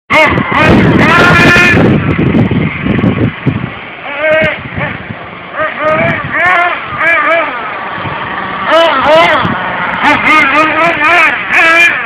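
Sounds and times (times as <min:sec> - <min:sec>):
small engine revving in bursts: 0:04.0 - 0:12.0.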